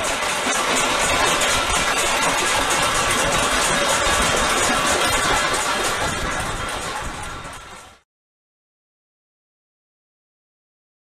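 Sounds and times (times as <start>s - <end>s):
spoons banging metal pans: 0.0s - 7.3s
people clapping: 0.0s - 8.0s.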